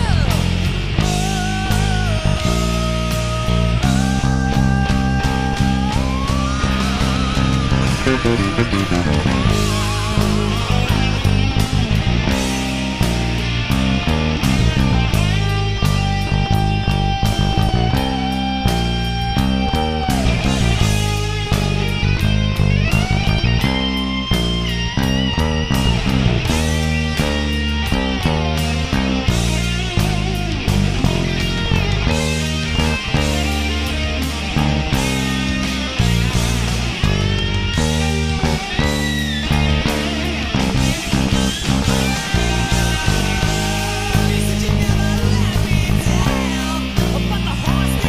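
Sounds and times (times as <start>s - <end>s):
drums: 0.0s - 48.0s
electric bass line: 0.0s - 48.0s
lead electric guitar solo: 0.0s - 48.0s.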